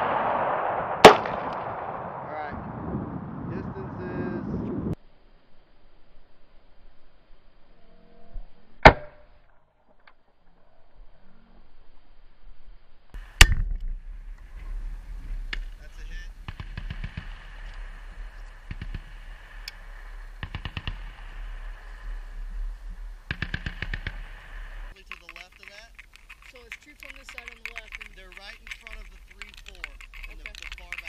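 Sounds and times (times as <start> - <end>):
grenade launcher shot: 0.0 - 2.3
distant machine-gun bursts: 16.4 - 25.0.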